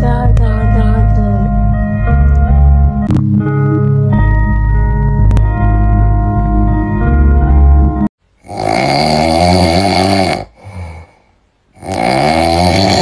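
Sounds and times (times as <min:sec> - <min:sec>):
short music: 0:00.0 - 0:08.1.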